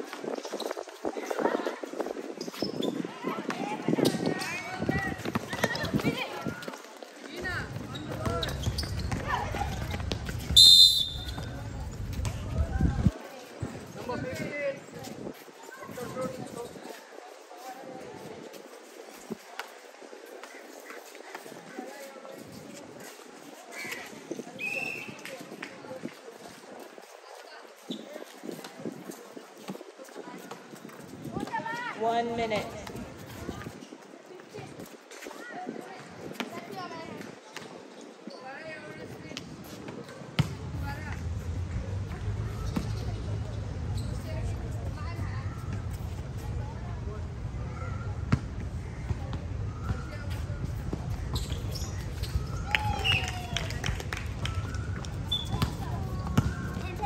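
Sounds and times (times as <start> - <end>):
footsteps on hard court: 2.4 - 12.8
referee's whistle blast: 10.6 - 11.4.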